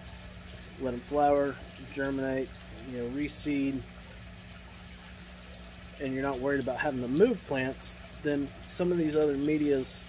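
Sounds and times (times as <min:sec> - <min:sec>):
running and trickling water: 0:00.0 - 0:10.0.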